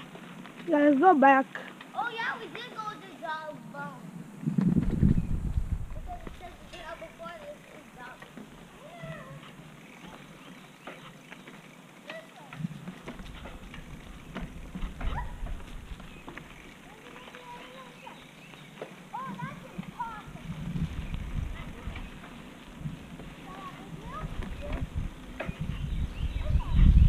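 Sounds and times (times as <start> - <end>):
low rumble on microphone: 4.2 - 6.6, 20.4 - 27.0
children calling out: 6.0 - 10.3, 12.0 - 12.6, 15.0 - 15.7, 16.7 - 20.6, 23.3 - 25.0.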